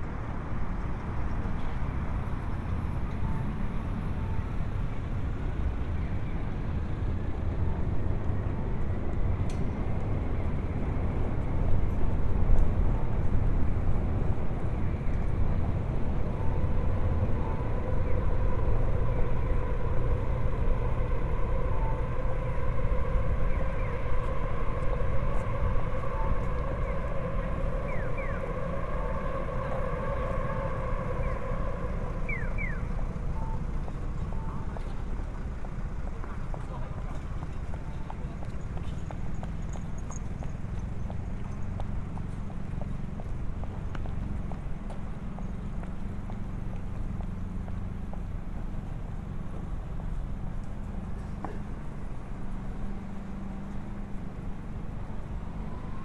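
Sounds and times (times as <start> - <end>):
road traffic rumble: 0.0 - 56.0.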